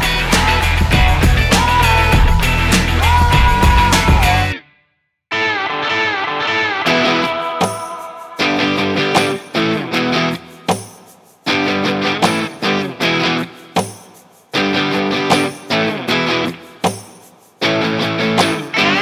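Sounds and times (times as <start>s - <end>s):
plucked electric guitar music: 0.0s - 4.6s, 5.3s - 10.7s, 11.5s - 13.7s, 14.6s - 16.7s, 17.6s - 19.0s.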